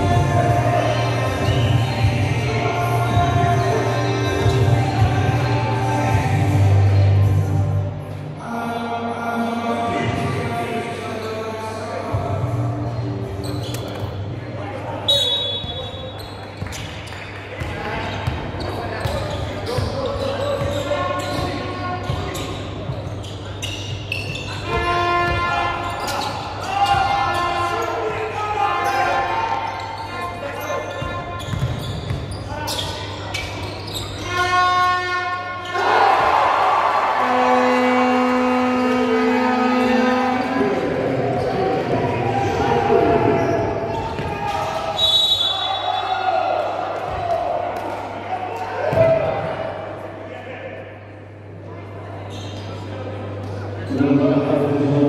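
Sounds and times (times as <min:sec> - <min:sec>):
people shouting: 0:35.7 - 0:37.8
low horn: 0:37.0 - 0:41.1
short high whistle: 0:45.0 - 0:46.0.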